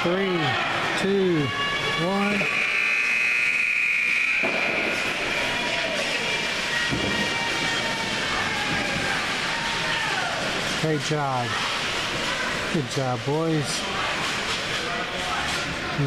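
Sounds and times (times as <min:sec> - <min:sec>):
hubbub of spectators' voices: 0:00.0 - 0:03.2, 0:04.1 - 0:16.0
arena horn steady high tone: 0:01.3 - 0:05.5.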